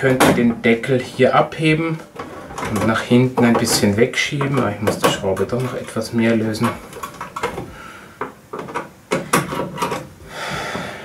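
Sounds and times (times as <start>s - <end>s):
panel knocks and clacks: 0.0s - 1.4s, 2.0s - 10.2s
panel scraping: 0.0s - 7.9s.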